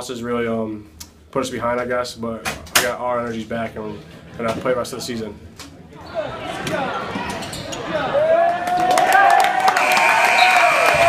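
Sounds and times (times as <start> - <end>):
crowd voices: 3.8 - 11.0
long held yell: 8.2 - 11.0.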